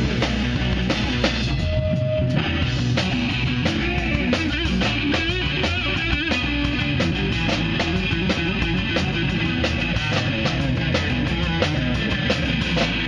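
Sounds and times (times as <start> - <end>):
bass guitar: 0.0 - 13.0
drum kit beat: 0.0 - 13.0
electric guitar: 0.0 - 13.0.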